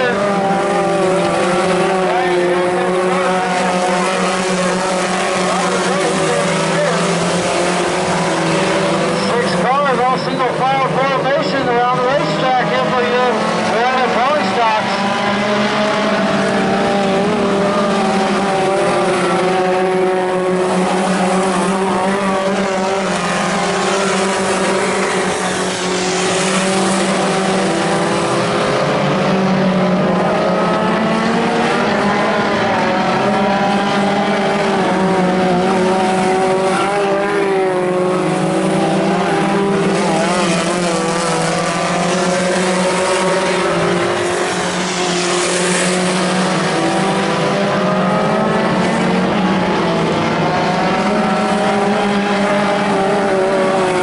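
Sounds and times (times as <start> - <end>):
race car engines revving: 0.0 - 54.0.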